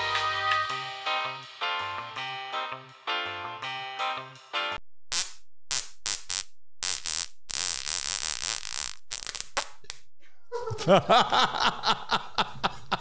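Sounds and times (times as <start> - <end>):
man farting: 5.1 - 10.0.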